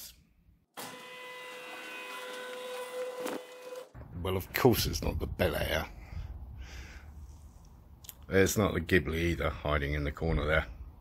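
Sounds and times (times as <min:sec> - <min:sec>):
garage door opener motor: 0:00.8 - 0:03.9.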